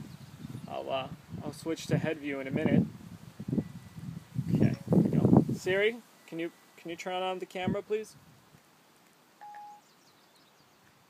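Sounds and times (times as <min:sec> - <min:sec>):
short electronic beep: 0:09.4 - 0:09.8.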